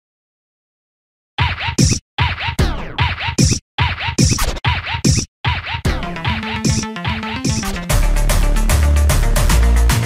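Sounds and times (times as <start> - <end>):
turntable record scratching: 1.4 - 7.9.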